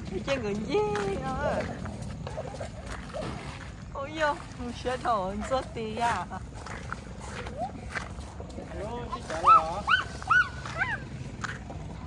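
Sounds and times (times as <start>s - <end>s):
child squealing: 9.4s - 11.0s.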